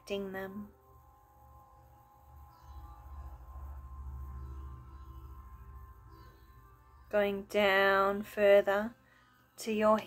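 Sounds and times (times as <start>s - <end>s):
ambient meditation music: 0.0s - 10.0s.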